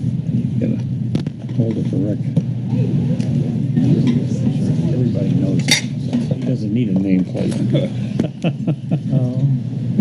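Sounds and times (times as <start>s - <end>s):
indistinct talking: 0.2s - 10.0s.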